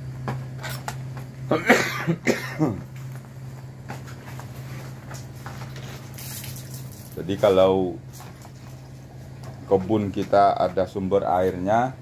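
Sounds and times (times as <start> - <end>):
steady low hum: 0.0 - 12.0
man coughing: 1.5 - 2.9.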